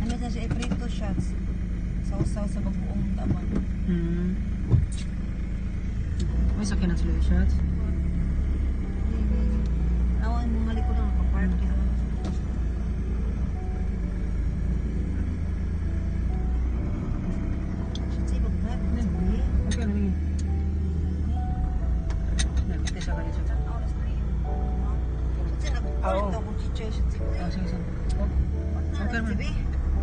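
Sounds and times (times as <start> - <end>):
car engine rumble from inside: 0.0 - 30.0
road noise: 0.0 - 30.0.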